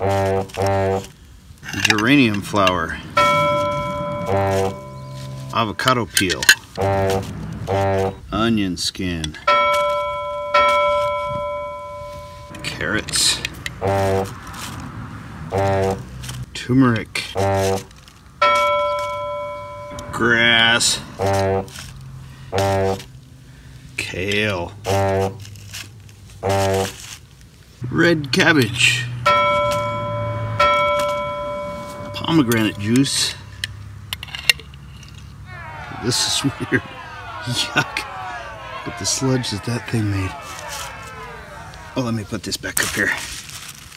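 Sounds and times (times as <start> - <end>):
bell-like chime: 3.2 - 5.6, 9.5 - 12.8, 18.4 - 20.8, 29.3 - 33.0
man's voice: 35.5 - 43.3.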